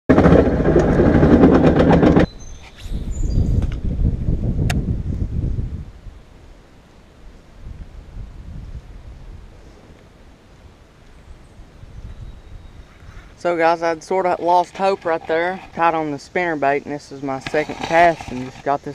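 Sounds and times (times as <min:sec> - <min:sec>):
tractor engine running: 0:00.1 - 0:02.3
low rumble: 0:00.1 - 0:06.3.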